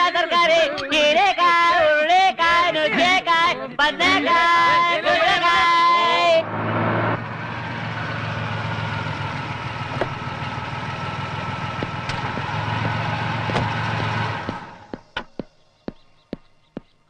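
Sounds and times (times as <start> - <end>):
car engine idling: 4.3 - 16.9.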